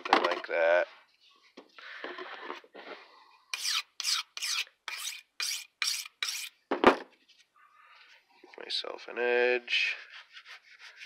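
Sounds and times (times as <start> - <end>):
knife on sharpening stone: 3.6 - 6.6.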